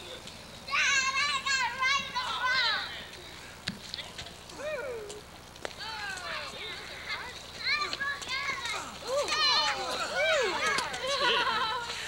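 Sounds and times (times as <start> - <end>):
children shouting: 7.2 - 12.0.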